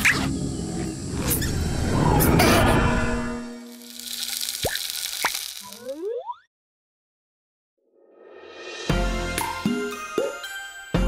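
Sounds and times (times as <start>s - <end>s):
short rising glide: 0.7s - 3.7s.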